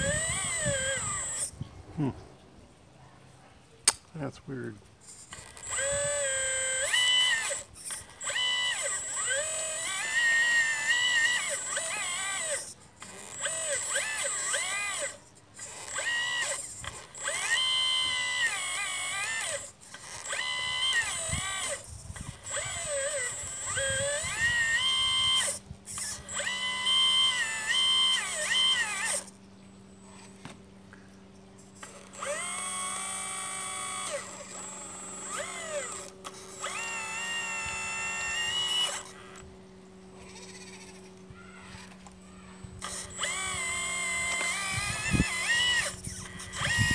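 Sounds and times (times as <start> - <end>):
electric motor whining: 0.0 - 2.2, 5.0 - 46.9.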